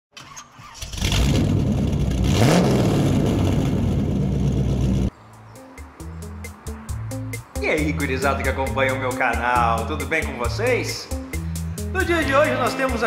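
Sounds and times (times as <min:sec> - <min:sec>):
car engine starting and revving: 0:00.2 - 0:05.1
background music: 0:05.1 - 0:13.0.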